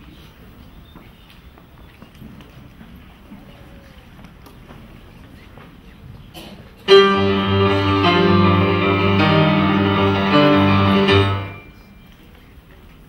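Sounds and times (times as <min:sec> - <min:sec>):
grand piano chord: 0:06.9 - 0:11.9.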